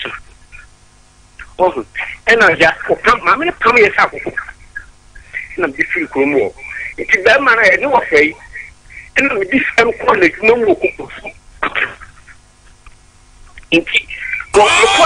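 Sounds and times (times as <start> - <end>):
person talking over a telephone: 1.4 - 12.2.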